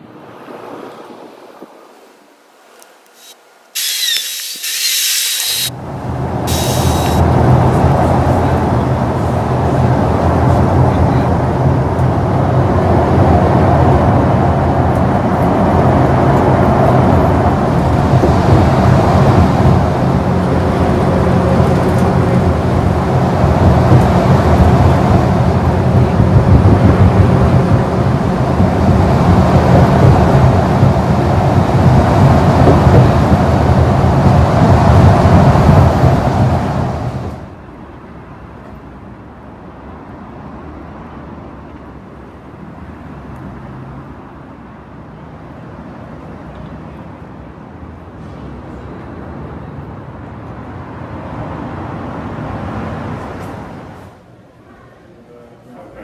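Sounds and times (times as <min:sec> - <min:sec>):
vehicle rumble from inside: 0:03.2 - 0:37.6.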